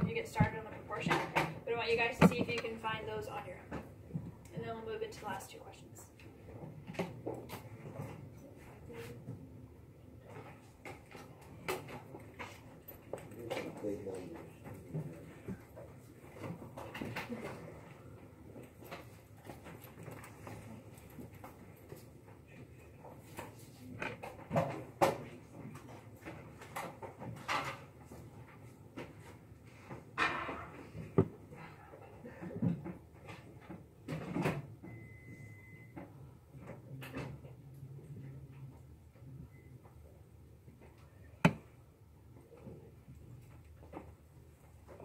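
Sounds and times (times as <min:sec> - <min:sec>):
room murmur: 0:00.0 - 0:45.0.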